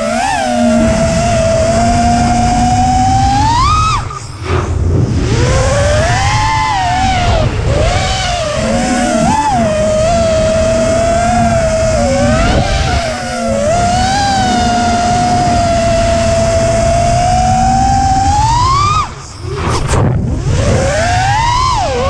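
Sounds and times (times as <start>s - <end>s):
drone motors and propellers whining: 0.0s - 22.0s
wind rumble on microphone: 0.0s - 22.0s.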